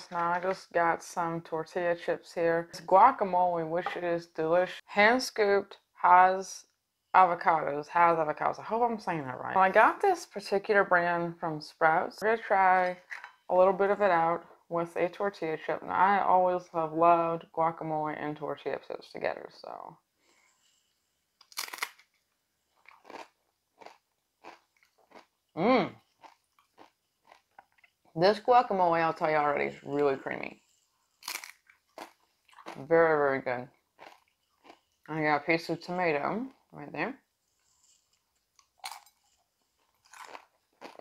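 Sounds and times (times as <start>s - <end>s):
tortilla chip crunching: 21.4s - 22.2s, 22.8s - 25.3s, 26.1s - 27.8s, 31.2s - 32.8s, 38.1s - 41.0s
chewing with soft crunches: 22.6s - 28.2s, 30.6s - 32.8s, 33.7s - 35.1s, 37.4s - 41.0s.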